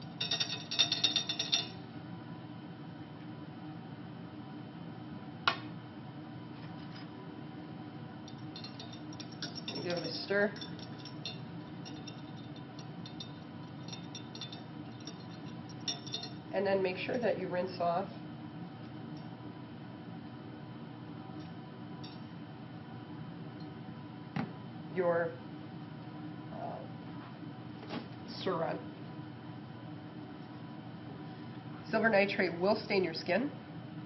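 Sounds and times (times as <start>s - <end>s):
glassware clinking: 0.2s - 1.8s, 8.3s - 16.4s.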